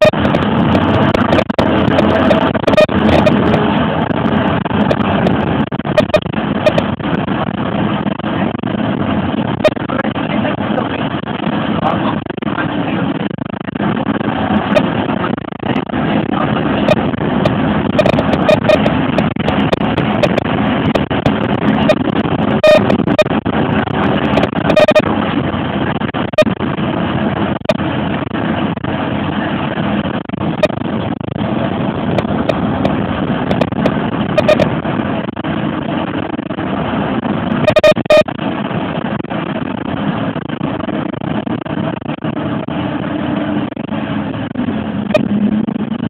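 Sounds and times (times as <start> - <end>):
bus engine and road noise: 0.0 - 46.0.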